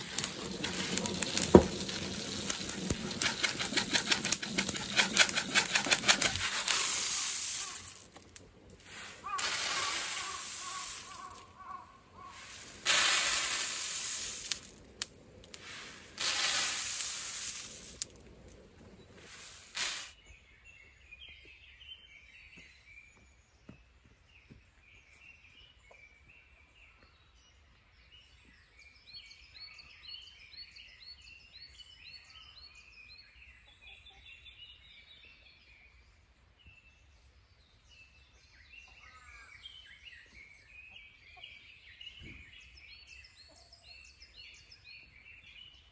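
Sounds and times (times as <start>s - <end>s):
birds singing and chirping: 0.0s - 12.8s
coffee beans pouring into basket: 0.0s - 20.2s.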